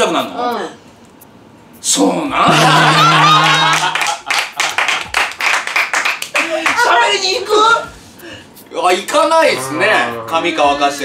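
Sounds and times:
group laughing: 0:02.4 - 0:05.1
hands clapping quickly: 0:03.4 - 0:06.9.

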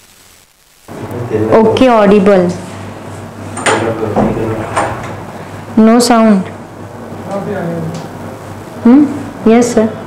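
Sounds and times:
woman speaking: 0:01.7 - 0:02.6, 0:05.8 - 0:06.5, 0:08.8 - 0:10.0.

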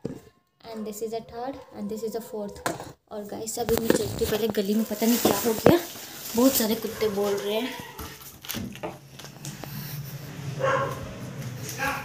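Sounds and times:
dogs barking: 0:06.8 - 0:08.0, 0:10.4 - 0:12.0.

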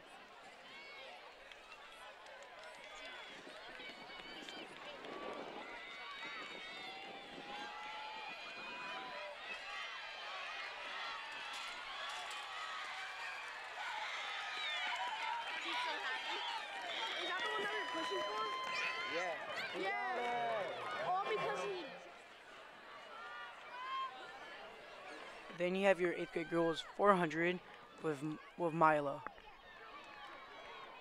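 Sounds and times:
crowd cheering: 0:00.0 - 0:31.0
crowd talking and calling out: 0:00.0 - 0:31.0.

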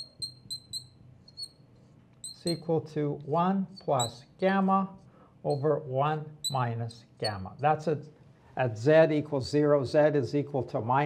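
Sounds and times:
marker squeaking on glass: 0:00.0 - 0:02.7, 0:03.7 - 0:04.3, 0:05.5 - 0:05.7, 0:06.4 - 0:07.7.

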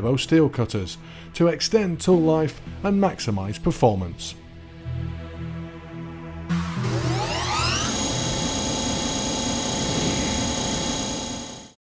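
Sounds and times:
drill whining: 0:06.5 - 0:11.8.

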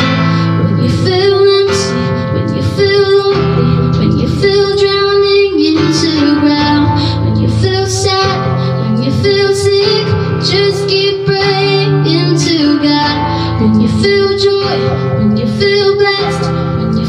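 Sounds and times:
acoustic guitar: 0:00.0 - 0:17.0
woman singing a worship song: 0:00.0 - 0:17.0.

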